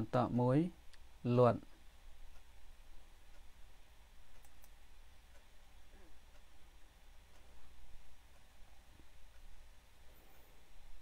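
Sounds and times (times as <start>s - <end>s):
steady low hum: 0.0s - 11.0s
faint clicks: 4.3s - 6.5s.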